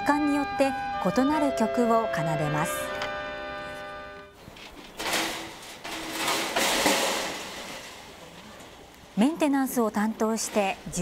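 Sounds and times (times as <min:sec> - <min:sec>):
rotary sirens holding a chord: 0:00.0 - 0:04.4.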